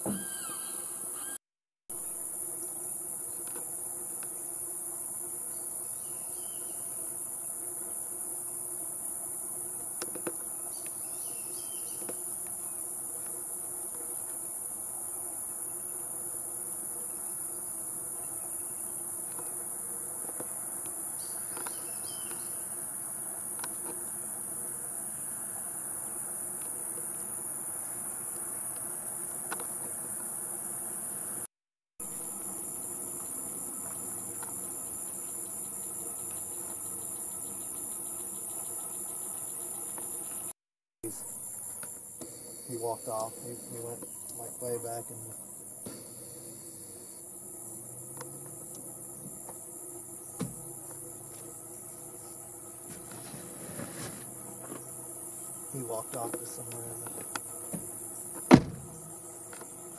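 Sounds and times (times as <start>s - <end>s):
crickets chirping: 0.0s - 1.4s, 2.0s - 31.5s, 32.1s - 59.9s.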